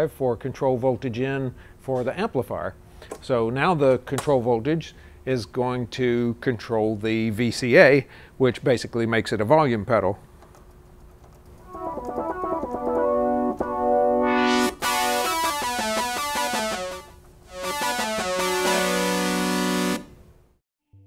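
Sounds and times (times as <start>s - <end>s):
synthesizer playing chords: 11.6s - 20.1s.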